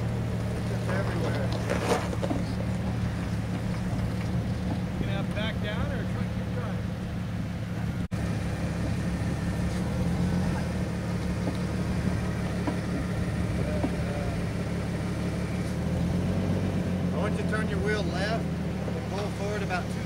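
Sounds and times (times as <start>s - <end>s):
engine running at low revs: 0.0s - 20.0s
faint voices: 12.7s - 15.6s.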